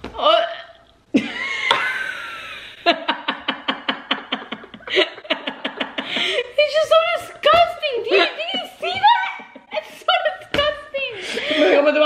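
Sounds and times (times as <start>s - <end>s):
girl and woman laughing: 8.1s - 10.2s.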